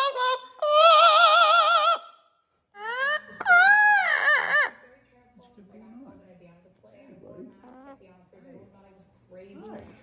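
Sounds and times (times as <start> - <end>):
parrot singing: 0.0 - 2.2, 2.8 - 4.9.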